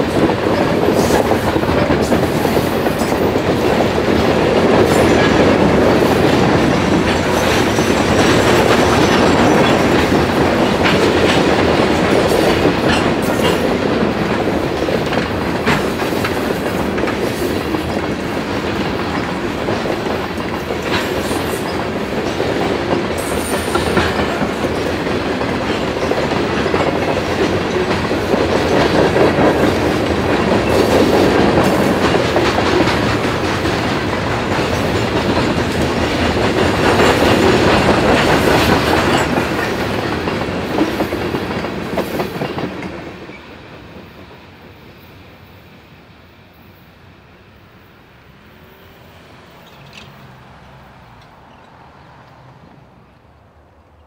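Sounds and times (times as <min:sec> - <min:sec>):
wheels clicking over rail joints: 0:00.0 - 0:43.5, 0:49.6 - 0:53.2
train wheels rumbling on rail: 0:00.0 - 0:54.0.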